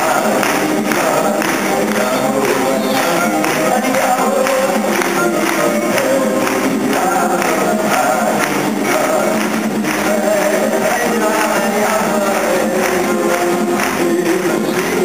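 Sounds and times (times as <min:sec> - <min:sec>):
acoustic guitar: 0:00.0 - 0:15.0
drums beating: 0:00.0 - 0:15.0
man singing: 0:00.0 - 0:15.0.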